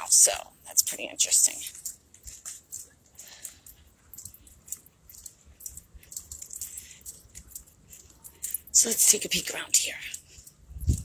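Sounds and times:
light clicks and rattles: 0.0s - 11.0s.

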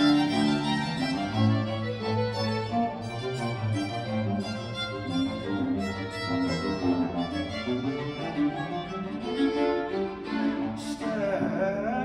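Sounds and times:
baroque string ensemble playing: 0.0s - 12.0s.

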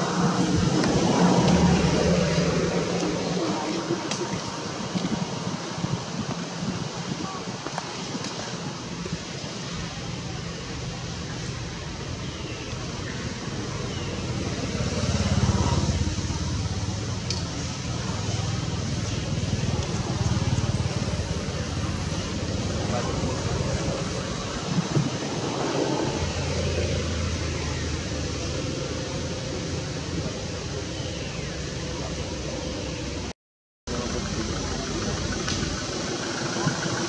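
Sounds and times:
faint indistinct voices: 0.0s - 33.3s, 33.9s - 37.0s.

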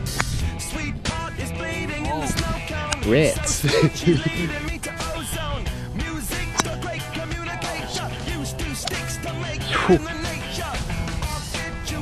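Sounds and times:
rock music with singing: 0.0s - 12.0s
sharp click: 6.6s - 6.8s.

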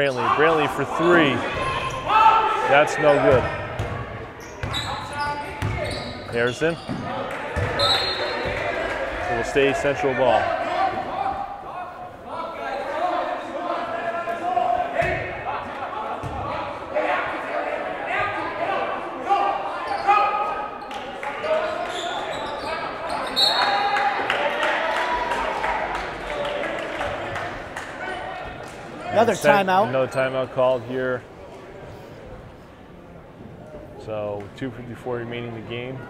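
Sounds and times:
people shouting in a gym: 0.0s - 5.9s, 10.0s - 27.3s.

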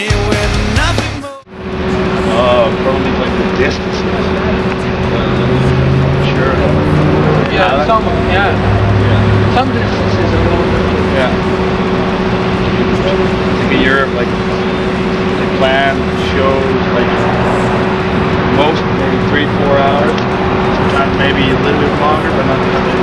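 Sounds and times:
deep rumble: 1.5s - 23.0s
mechanical hum: 1.5s - 23.0s
murmured speech: 1.9s - 23.0s.

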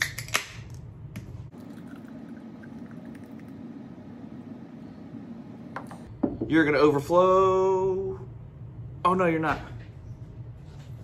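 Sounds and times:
beer pouring into a glass: 1.5s - 4.8s.

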